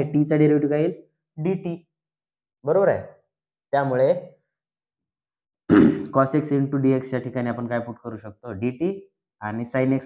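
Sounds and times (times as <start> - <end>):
man speaking: 6.0 - 10.0.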